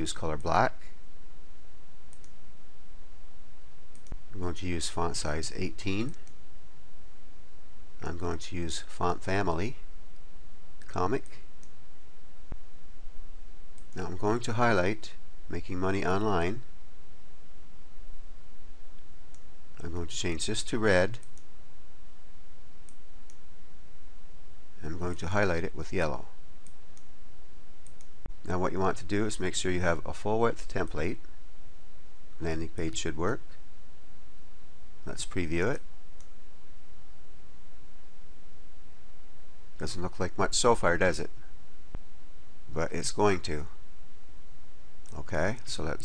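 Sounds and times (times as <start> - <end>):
steady background hiss: 0.0 - 46.0
computer mouse click: 2.1 - 2.4, 3.9 - 4.2, 21.2 - 21.5.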